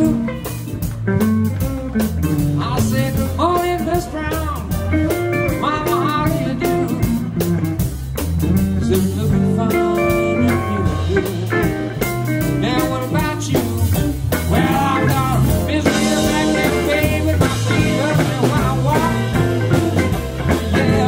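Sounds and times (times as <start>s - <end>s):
blues band playing: 0.0s - 21.0s
electric guitar bent notes: 0.0s - 21.0s.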